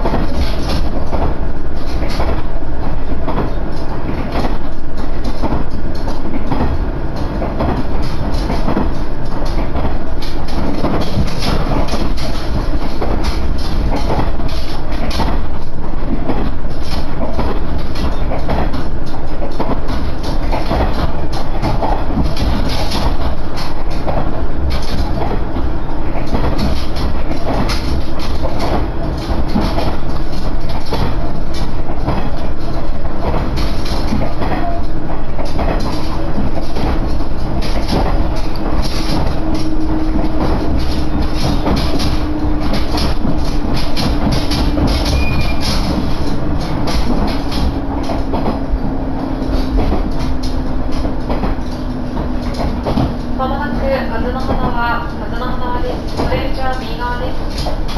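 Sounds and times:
steady train rumble: 0.0s - 57.9s
wheels clattering over rail joints: 0.0s - 57.9s.

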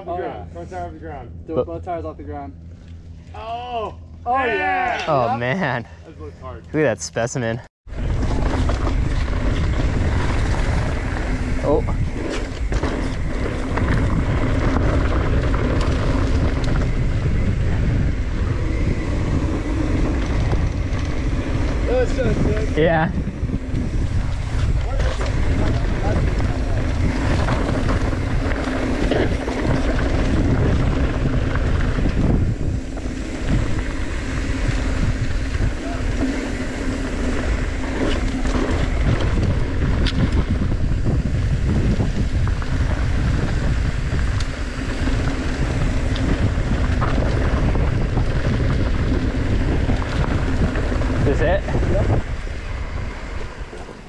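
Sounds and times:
steady low hum: 0.0s - 54.0s
bike rattles and clicks: 7.9s - 54.0s
bike tyre noise on dirt: 7.9s - 54.0s
wind on microphone: 7.9s - 54.0s.

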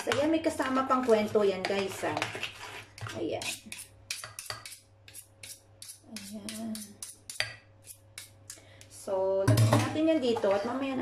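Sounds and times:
spoon stirring batter in glass bowl: 0.0s - 8.9s.

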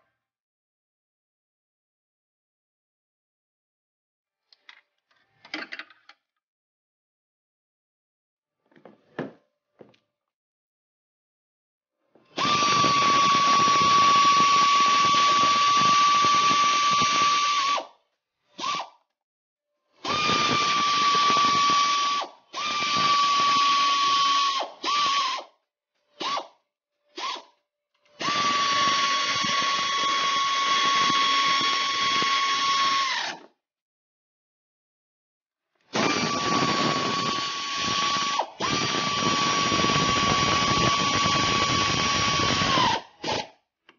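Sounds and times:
power ratchet whining: 36.0s - 43.5s.

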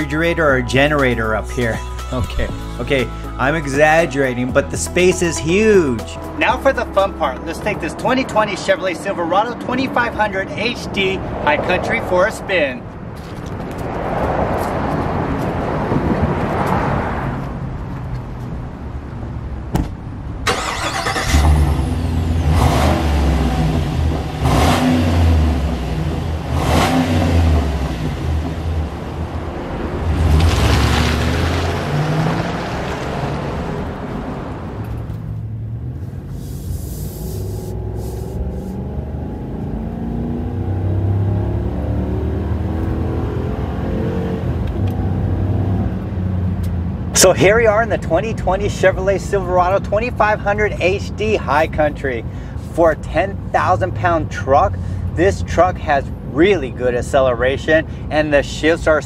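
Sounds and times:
truck engine revving: 20.5s - 46.0s.

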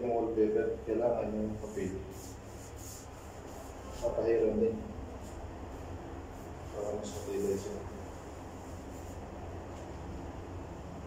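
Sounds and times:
brush rubbing glue on surface: 1.5s - 9.4s.

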